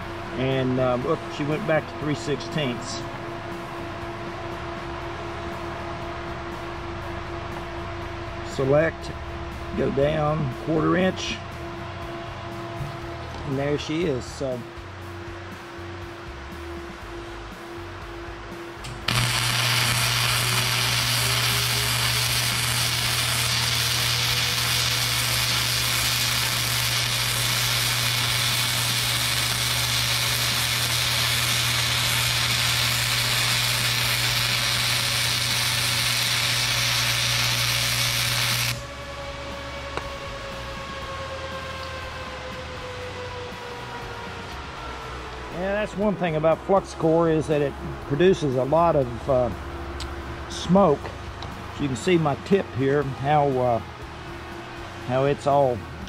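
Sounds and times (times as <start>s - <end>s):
low hum: 0.0s - 56.0s
welding arc crackling: 18.9s - 38.9s.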